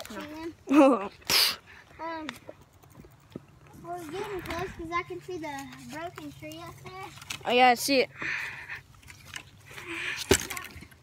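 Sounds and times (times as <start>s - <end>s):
heavy breathing: 4.1s - 5.1s, 8.1s - 10.4s.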